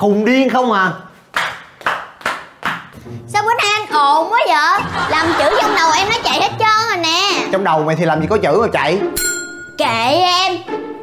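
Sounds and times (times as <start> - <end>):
sharp hand claps: 1.3 - 3.0.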